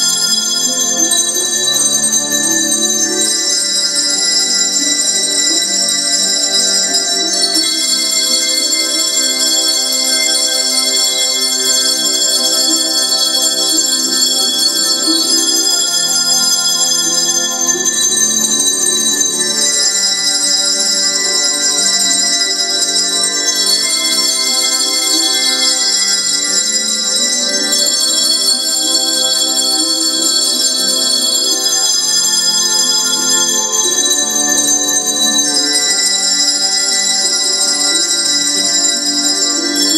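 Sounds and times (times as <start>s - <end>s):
handbells ringing chords: 0.0s - 39.9s.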